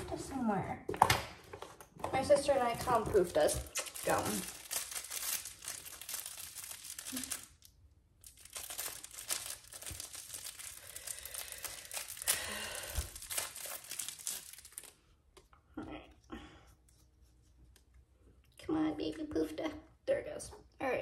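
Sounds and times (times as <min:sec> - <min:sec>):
plastic packaging crinkling: 0:01.5 - 0:15.0.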